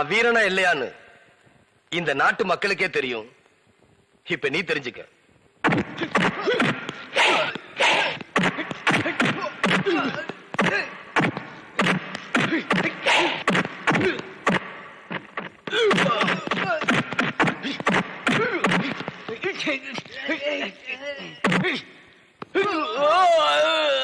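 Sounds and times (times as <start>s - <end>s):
punch and kick impacts: 5.6s - 19.5s
men grunting and shouting: 5.8s - 11.1s, 11.8s - 14.6s, 15.6s - 21.9s, 22.5s - 23.6s.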